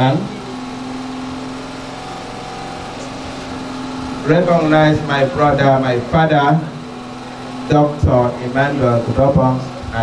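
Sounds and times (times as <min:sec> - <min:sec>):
faint steady tones: 0:00.0 - 0:10.0
mechanical hum: 0:00.0 - 0:10.0
man's amplified voice: 0:04.2 - 0:06.9, 0:07.6 - 0:10.0.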